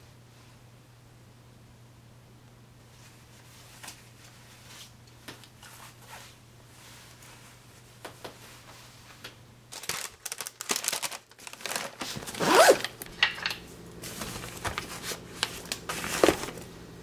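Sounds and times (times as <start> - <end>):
bag rustling and clicks: 9.7 - 13.2
zipper on lunch bag: 12.3 - 12.9.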